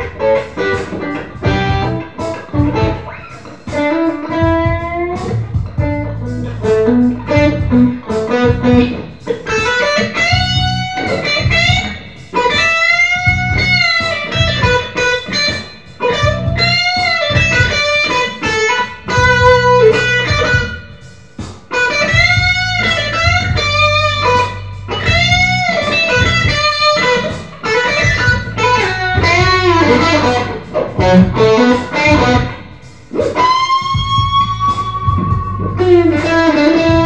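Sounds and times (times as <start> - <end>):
electric guitar lead line: 0.0 - 37.0
low bass line: 1.4 - 3.0, 4.4 - 9.0, 28.4 - 31.5, 34.1 - 37.0.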